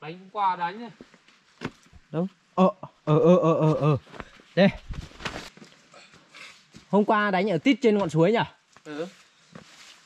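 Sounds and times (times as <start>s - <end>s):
man's voice: 2.6s - 4.0s
rough handling noise: 4.2s - 5.7s.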